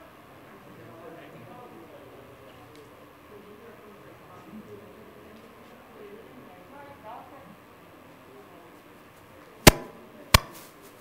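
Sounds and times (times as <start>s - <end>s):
sharp loud knocks: 9.7s - 10.6s.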